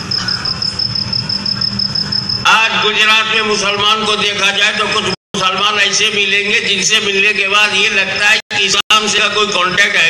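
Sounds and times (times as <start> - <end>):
crowd hum with high whine: 0.0 - 10.0.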